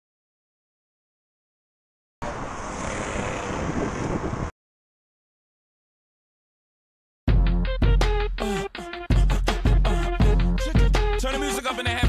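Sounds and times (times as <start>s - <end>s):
wind rushing over microphone: 2.2s - 4.5s.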